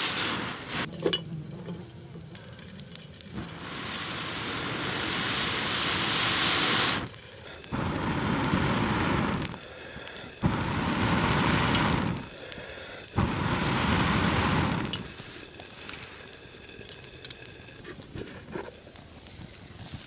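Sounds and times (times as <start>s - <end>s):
person blowing on embers: 0.0s - 0.9s, 2.0s - 20.0s.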